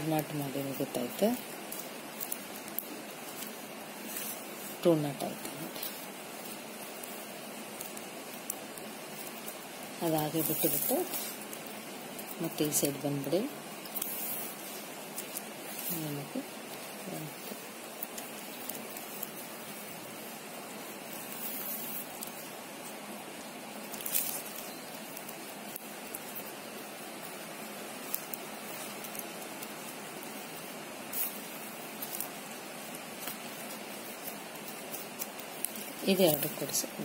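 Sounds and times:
steady background hiss: 0.0s - 37.0s.

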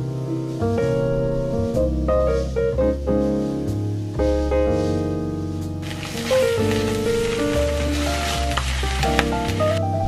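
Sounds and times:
background music: 0.0s - 10.0s
eggs sizzling in a frying pan: 5.8s - 9.8s.

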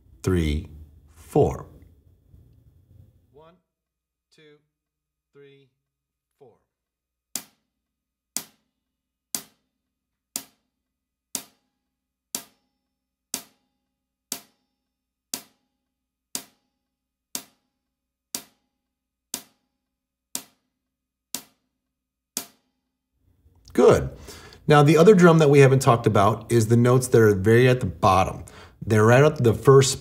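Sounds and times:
hi-hat struck with stick: 11.4s - 11.6s, 12.4s - 12.6s.

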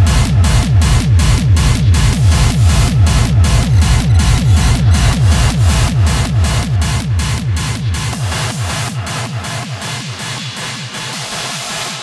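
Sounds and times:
distorted kick drums: 0.0s - 12.0s
harsh noisy layer: 0.0s - 12.0s.

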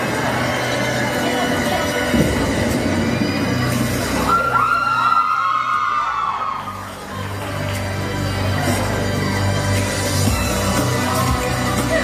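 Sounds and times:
faint voices: 0.0s - 4.5s.

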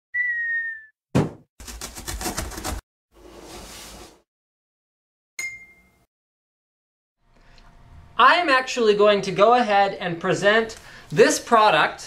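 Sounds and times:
cartoon falling whistle: 0.1s - 1.0s
cardboard box landing thud: 1.2s - 1.4s
blade sawing through cardboard: 1.6s - 2.8s.

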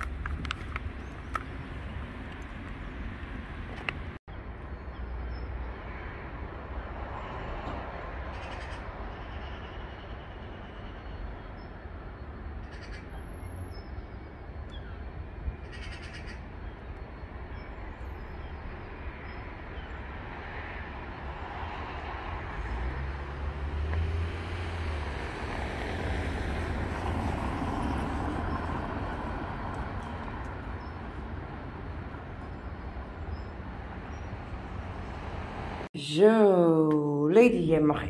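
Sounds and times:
distant traffic rumble: 0.0s - 38.0s.

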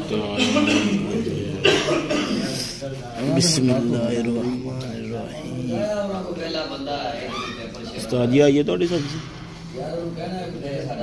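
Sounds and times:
voices talking: 0.0s - 8.2s
person coughing: 0.4s - 2.6s.

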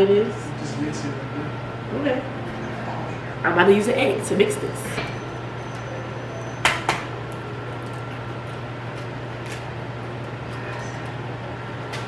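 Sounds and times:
room noise hum: 0.0s - 12.0s.

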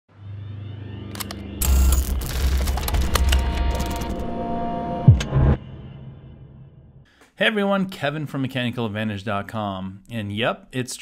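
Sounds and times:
machine-like tones: 0.1s - 6.6s
low hum: 0.1s - 7.0s.

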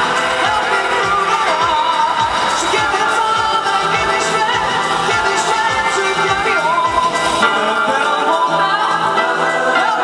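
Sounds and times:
men singing in harmony: 0.1s - 10.0s.

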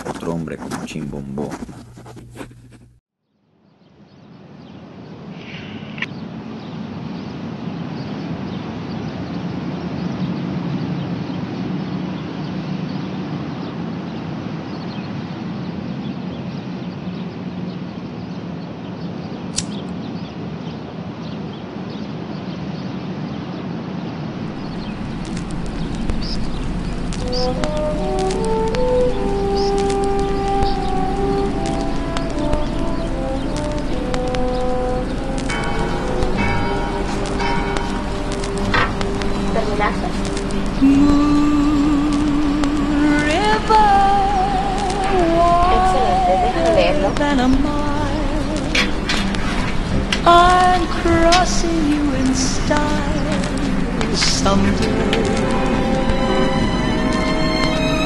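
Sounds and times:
turntable hum: 0.0s - 3.0s, 24.4s - 58.0s
vinyl surface crackle: 0.0s - 3.0s, 24.4s - 41.3s, 48.3s - 56.3s
low background noise: 0.0s - 58.0s
instrumental melody from record: 27.0s - 41.5s.

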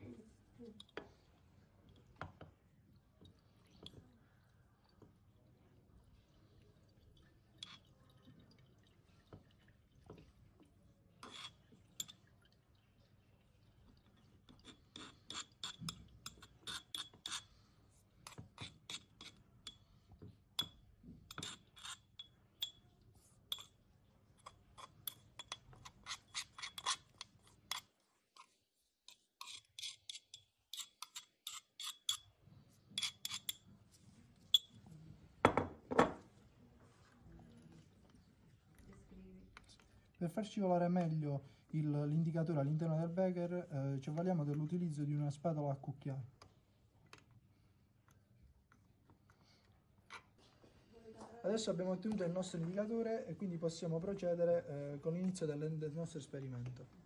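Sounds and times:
metal spoon clinking on ceramic bowl: 11.2s - 12.3s, 20.6s - 22.9s, 23.5s - 23.8s, 24.4s - 27.9s, 29.1s - 32.3s, 33.0s - 33.6s, 34.5s - 34.8s.

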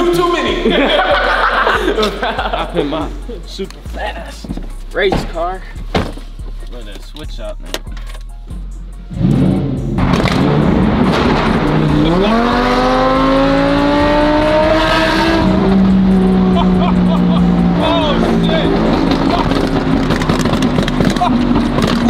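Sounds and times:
sports car engine revving: 9.0s - 22.0s
voices: 16.6s - 19.8s.

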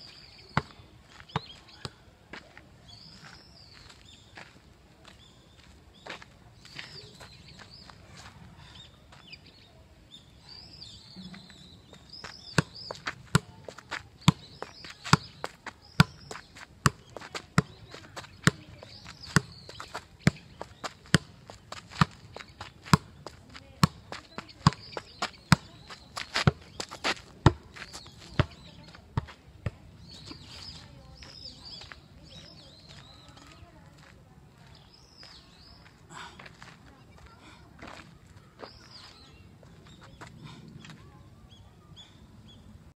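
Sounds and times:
faint birds chirping: 0.0s - 42.9s.

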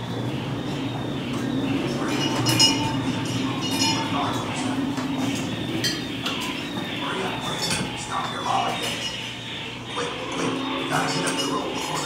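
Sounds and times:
metallic clinking: 2.0s - 9.6s.

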